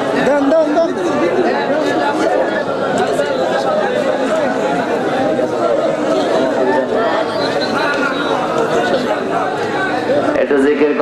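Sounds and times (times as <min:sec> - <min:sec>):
men talking over one another: 0:00.0 - 0:11.0.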